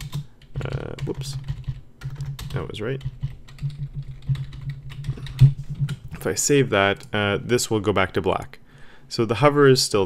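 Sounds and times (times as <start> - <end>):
keyboard typing: 0.0 - 6.3
low steady hum: 0.0 - 10.0.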